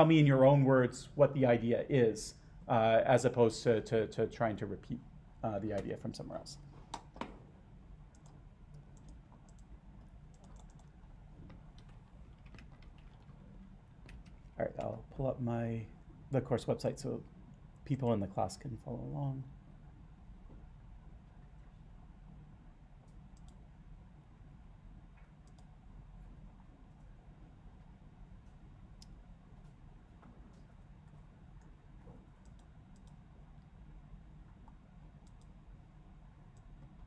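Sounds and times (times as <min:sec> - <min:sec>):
low room hum: 0:00.0 - 0:37.0
computer mouse clicks: 0:08.1 - 0:09.7, 0:10.3 - 0:13.4, 0:23.0 - 0:23.6, 0:25.2 - 0:25.7, 0:32.4 - 0:33.2, 0:34.7 - 0:35.6
typing on computer keyboard: 0:11.8 - 0:13.3.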